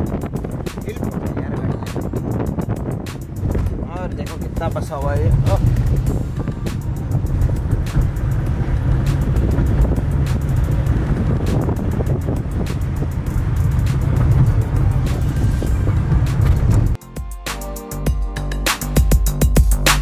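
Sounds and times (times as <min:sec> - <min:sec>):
car road and engine noise: 0:00.0 - 0:17.0
music playing: 0:00.0 - 0:20.0.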